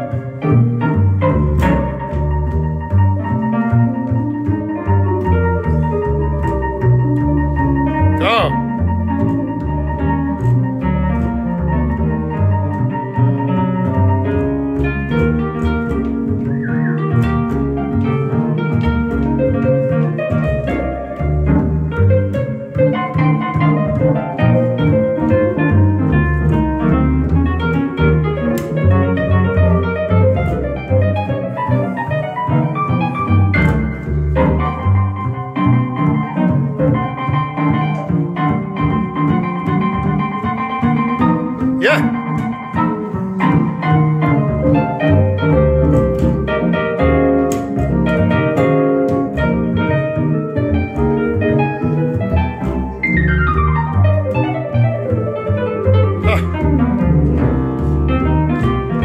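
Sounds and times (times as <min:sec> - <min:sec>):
plucked double bass: 0:00.0 - 0:59.0.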